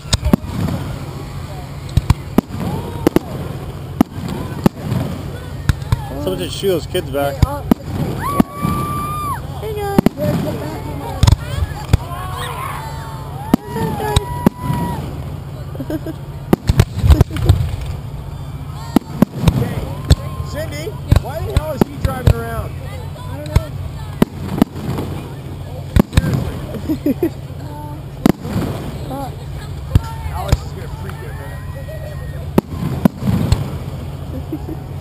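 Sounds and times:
fireworks bursting with sharp bangs: 0.0 - 31.3, 32.0 - 35.0.

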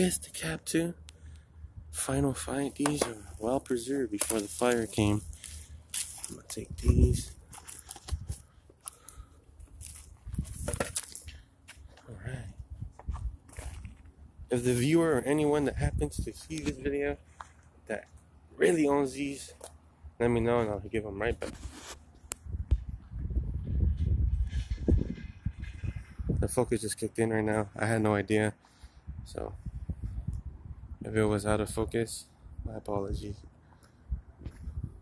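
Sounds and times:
crunching footsteps on dirt: 2.6 - 14.2.

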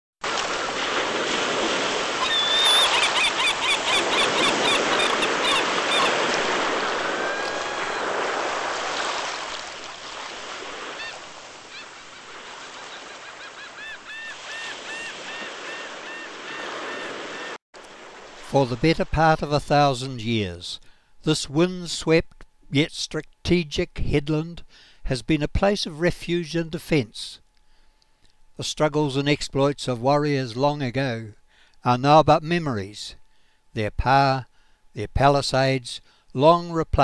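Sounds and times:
surf breaking against rocks: 0.2 - 13.6
seabirds calling: 2.2 - 8.6, 10.6 - 17.6.

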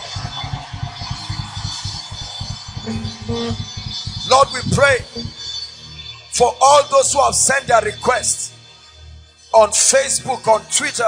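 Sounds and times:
soft music with pulsing bass: 0.0 - 11.0.

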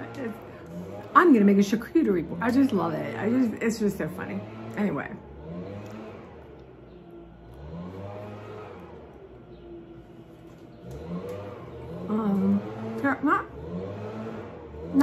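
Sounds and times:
vehicle engine revving: 0.0 - 15.0.

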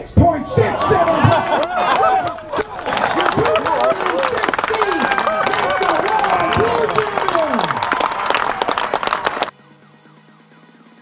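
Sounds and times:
people shouting: 0.2 - 9.4
crowd clapping and cheering: 0.6 - 9.5.

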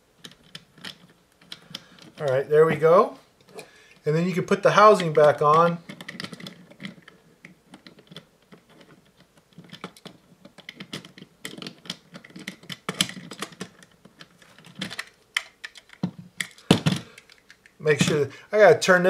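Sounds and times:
plastic parts clicking and rattling: 0.2 - 2.8, 3.4 - 18.3.

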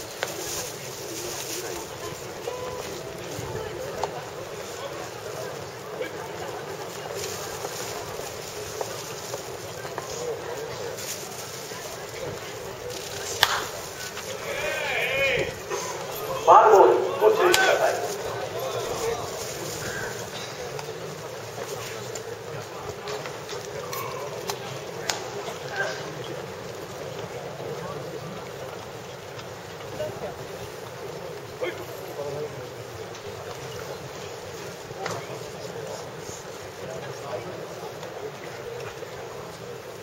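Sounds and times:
outdoor ballpark background noise: 0.0 - 40.0.

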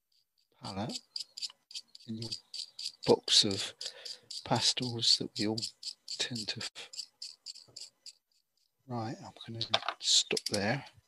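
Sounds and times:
pastel stick scratching: 0.6 - 8.2.

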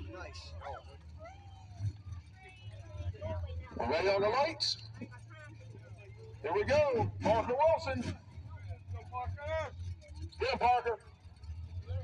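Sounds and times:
engines idling: 0.0 - 12.0
faint voices: 0.0 - 12.0.

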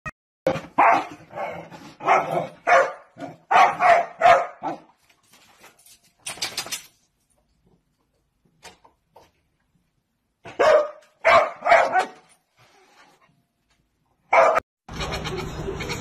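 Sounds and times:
dog barking: 0.7 - 4.9, 10.4 - 12.2, 14.3 - 14.6.

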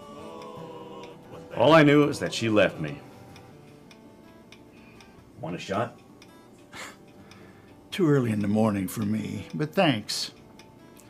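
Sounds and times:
faint sustained film score: 0.0 - 10.4
soft ticking: 0.0 - 11.0.

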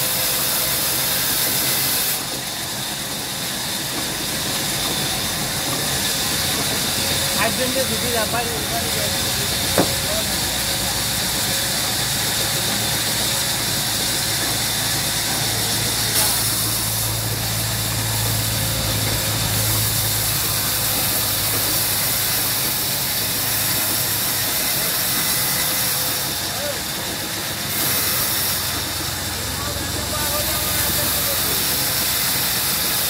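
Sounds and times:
band saw cutting wood: 0.0 - 33.0
deep machine hum: 5.1 - 13.6, 14.7 - 22.2.

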